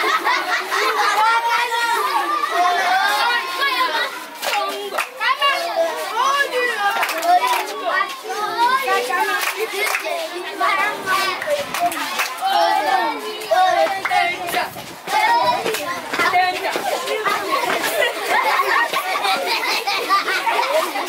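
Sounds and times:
children laughing and shouting: 0:00.0 - 0:21.0
hand claps: 0:04.4 - 0:05.2, 0:06.9 - 0:07.8, 0:09.3 - 0:10.2, 0:11.4 - 0:12.5.

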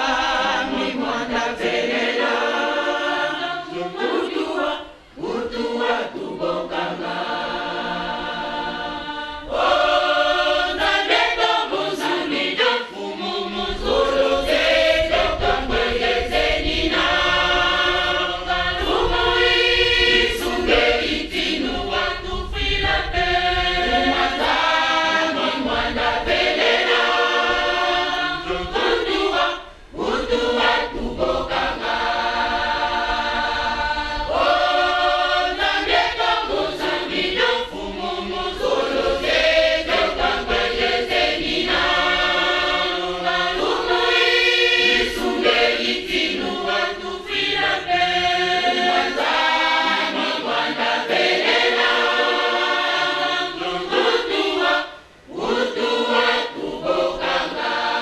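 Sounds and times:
church choir singing: 0:00.0 - 0:58.0.

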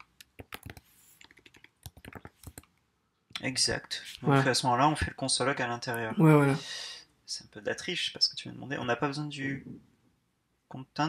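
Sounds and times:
quiet keyboard keystrokes: 0:00.0 - 0:02.7.

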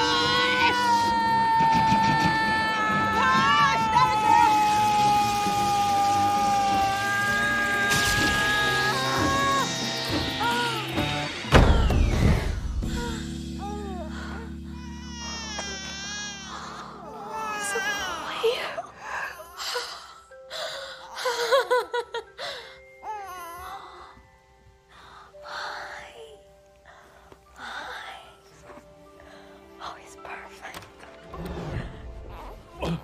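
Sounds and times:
woman screaming: 0:00.0 - 0:09.7
dramatic film score: 0:00.0 - 0:15.1
newborn baby crying: 0:13.0 - 0:19.9.

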